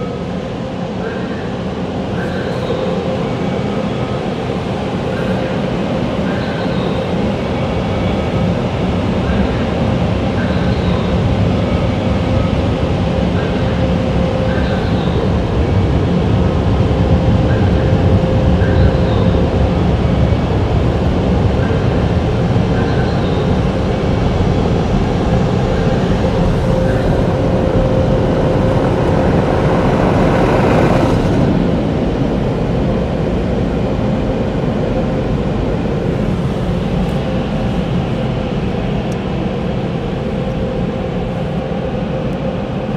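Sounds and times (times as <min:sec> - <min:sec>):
car wash air dryers blowing: 0:00.0 - 0:42.9.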